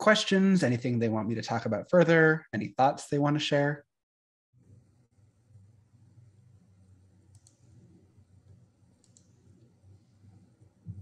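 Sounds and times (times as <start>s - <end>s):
faint clicks: 7.3s - 9.7s.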